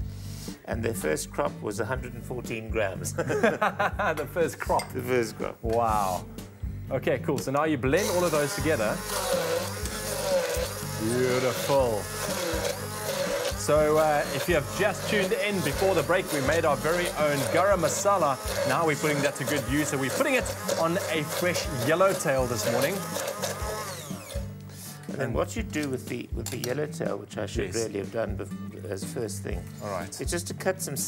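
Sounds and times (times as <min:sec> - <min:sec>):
background music: 0:00.0 - 0:31.0
stick blender running: 0:07.9 - 0:24.7.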